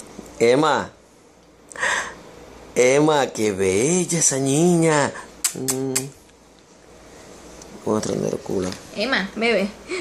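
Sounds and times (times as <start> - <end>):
low humming voice: 5.4 - 6.2.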